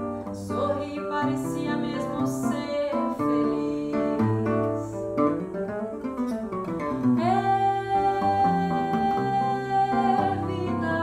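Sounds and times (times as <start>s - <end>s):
nylon-string guitar samba accompaniment: 0.0s - 11.0s
woman singing long held note: 7.2s - 11.0s.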